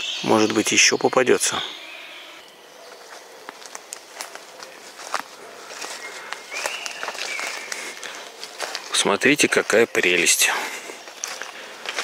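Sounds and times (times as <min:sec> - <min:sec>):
footsteps through undergrowth: 0:02.3 - 0:12.0
leaves and twigs crackling: 0:02.3 - 0:12.0.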